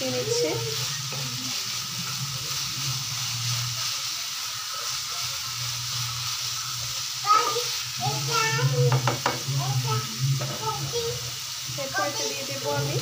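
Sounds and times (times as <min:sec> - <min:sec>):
vegetables sizzling in oil: 0:00.0 - 0:13.0.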